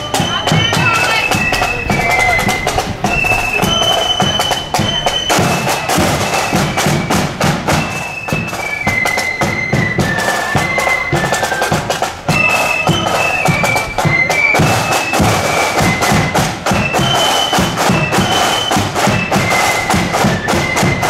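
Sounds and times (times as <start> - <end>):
flute melody: 0.0 - 21.0.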